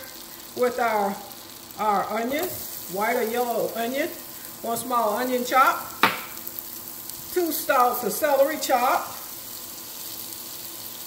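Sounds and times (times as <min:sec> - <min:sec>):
onion sizzling in a pot: 0:00.0 - 0:11.0.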